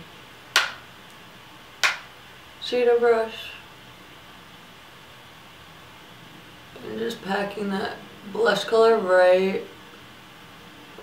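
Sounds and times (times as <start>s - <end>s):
sharp clicks of makeup tools: 0.6s - 0.8s, 1.8s - 2.1s.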